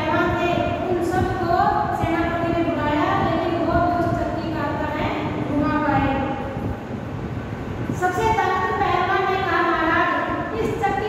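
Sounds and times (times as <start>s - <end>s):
woman speaking: 0.0s - 6.4s, 8.0s - 11.0s
low background rumble: 0.0s - 11.0s.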